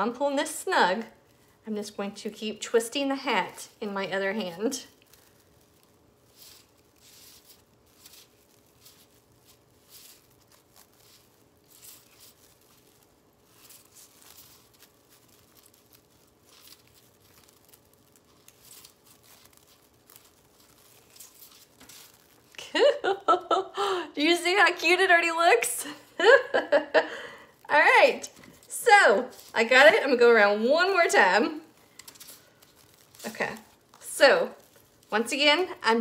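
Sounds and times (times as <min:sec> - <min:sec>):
plastic mesh crinkling and rustling: 0:00.0 - 0:23.5, 0:24.4 - 0:36.0.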